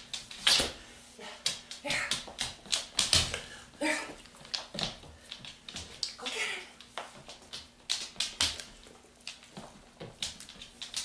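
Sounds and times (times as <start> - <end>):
dog claws clicking on hard floor: 1.4 - 3.5, 4.1 - 6.2, 6.8 - 11.0.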